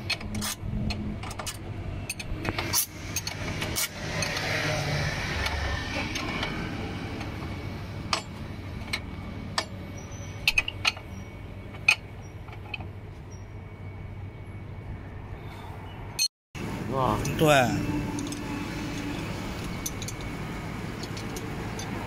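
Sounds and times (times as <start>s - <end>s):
road noise: 0.0s - 22.0s
spanner clinking against bolts: 8.1s - 13.4s, 18.1s - 22.0s.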